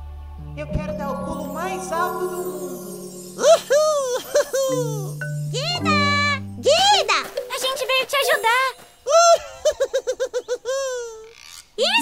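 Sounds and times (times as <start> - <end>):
cartoon character laughing: 3.9 - 5.1, 9.1 - 11.3.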